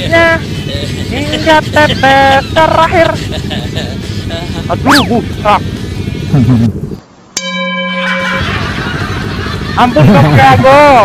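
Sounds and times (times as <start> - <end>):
bell-like chime: 7.4 - 9.3.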